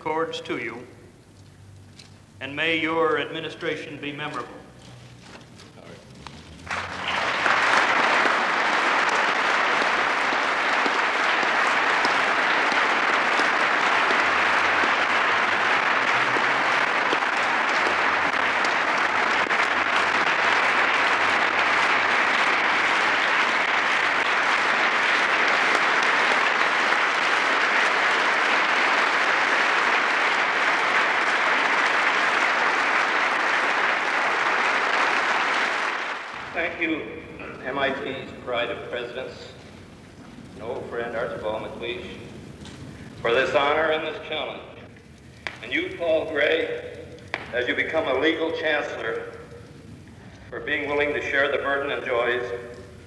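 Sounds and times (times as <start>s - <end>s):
audience applauding: 6.5s - 37.0s, 45.3s - 50.3s.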